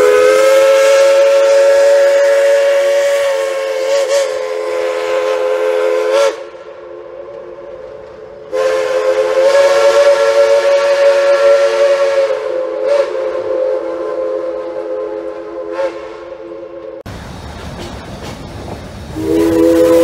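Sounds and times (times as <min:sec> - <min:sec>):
steam locomotive chime whistle: 0:00.0 - 0:17.0, 0:19.2 - 0:20.0.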